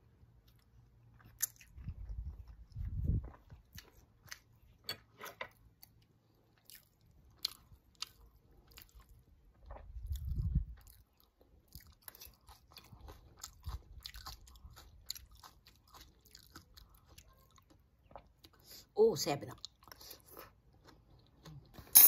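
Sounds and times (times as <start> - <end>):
crunchy chewing: 0.4 - 18.7.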